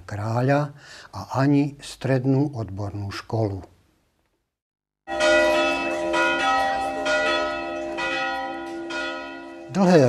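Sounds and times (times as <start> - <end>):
church bells ringing: 5.1 - 10.0.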